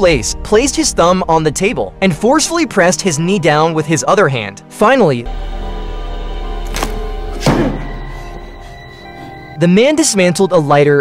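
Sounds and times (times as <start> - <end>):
sustained low orchestral chord: 0.0 - 10.8
short knock: 6.8 - 8.0
thud with ringing tail: 7.2 - 8.4.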